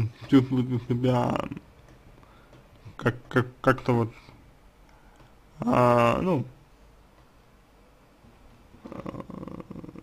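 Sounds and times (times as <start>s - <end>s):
man's creaky vocal fry: 8.8s - 10.0s.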